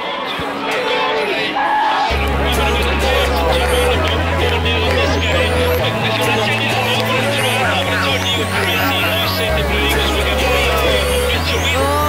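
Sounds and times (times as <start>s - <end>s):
electronic backing music: 2.0s - 12.0s
person singing: 2.1s - 12.0s
rising high sweep: 2.1s - 12.0s.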